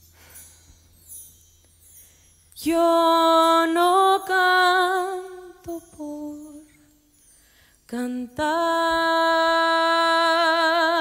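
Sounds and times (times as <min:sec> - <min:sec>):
woman singing with vibrato: 0:02.6 - 0:07.1, 0:07.9 - 0:11.0.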